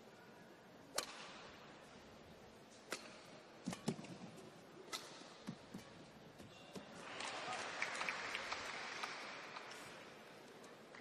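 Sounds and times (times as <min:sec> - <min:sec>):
rackets striking shuttlecock: 0:00.9 - 0:01.6, 0:02.7 - 0:06.6.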